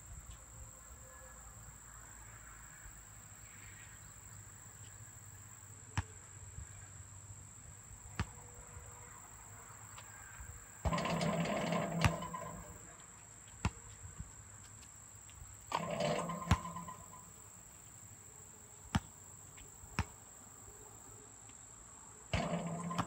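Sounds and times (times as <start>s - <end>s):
basketball bouncing on asphalt: 10.8s - 17.4s, 18.9s - 20.2s, 22.3s - 23.0s
ball clanging off metal rim: 10.9s - 12.9s, 15.7s - 17.3s, 22.3s - 23.0s.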